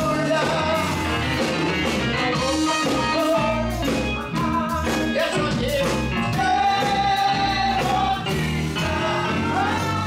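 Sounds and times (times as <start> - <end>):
instrumental accompaniment: 0.0 - 10.0
women singing gospel song: 6.4 - 10.0.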